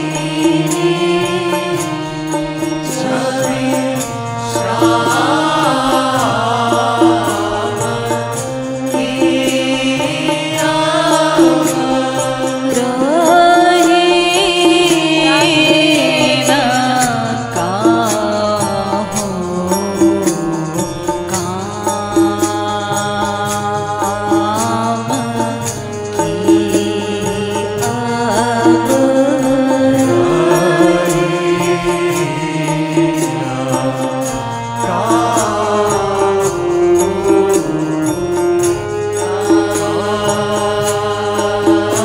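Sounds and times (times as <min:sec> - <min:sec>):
hand drums: 0:00.0 - 0:42.0
held drone notes: 0:00.0 - 0:42.0
voices singing devotional song: 0:00.0 - 0:42.0.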